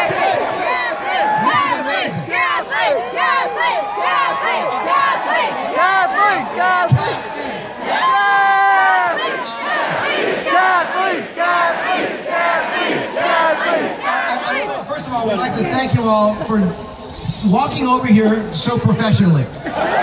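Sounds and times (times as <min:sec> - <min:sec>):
concert audience cheering and screaming: 0:00.0 - 0:16.8, 0:19.6 - 0:20.0.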